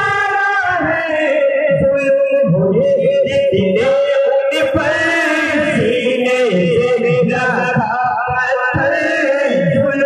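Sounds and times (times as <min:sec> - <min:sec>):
two men singing through loudspeaker: 0:00.0 - 0:10.0.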